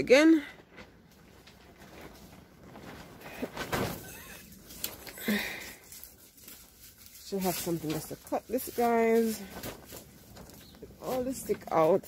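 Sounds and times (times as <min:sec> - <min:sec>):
dry vines rustling and crackling: 0:00.4 - 0:12.0.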